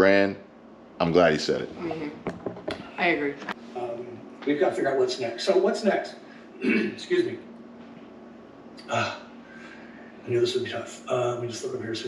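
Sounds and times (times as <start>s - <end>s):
man saying uh: 0.0s - 0.4s, 1.0s - 1.7s, 3.8s - 7.4s, 8.8s - 9.2s, 10.3s - 12.0s
faint steady hum: 0.0s - 12.0s.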